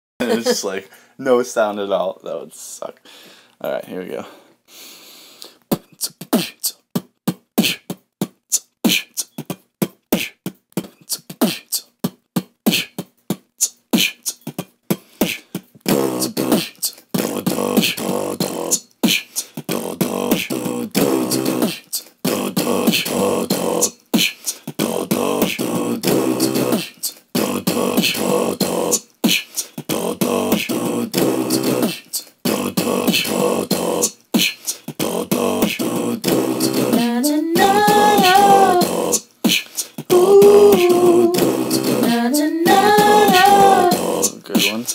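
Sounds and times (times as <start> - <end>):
beatboxing clicks and hits: 5.4 - 44.9
person singing: 15.3 - 44.9.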